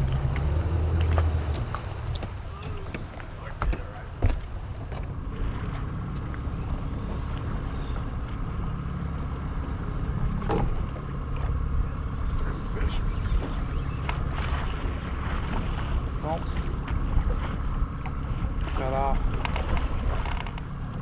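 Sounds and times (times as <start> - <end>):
waves against boat hull: 0.0 - 8.6, 12.4 - 21.0
knocks and clicks of gear: 19.3 - 20.7.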